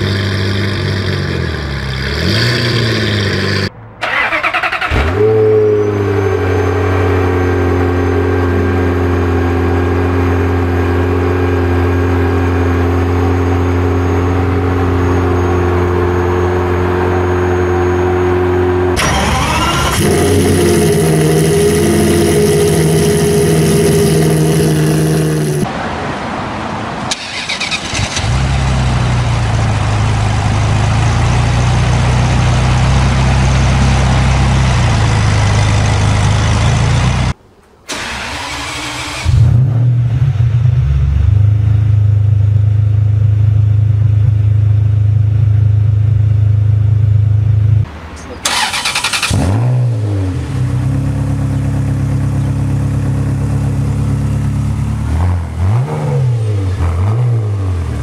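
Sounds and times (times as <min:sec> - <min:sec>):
car engine idling: 0:00.0 - 0:25.7, 0:27.1 - 0:55.8
engine revving: 0:00.0 - 0:25.8, 0:27.1 - 0:42.2, 0:47.7 - 0:58.0
car engine starting: 0:00.0 - 0:58.0.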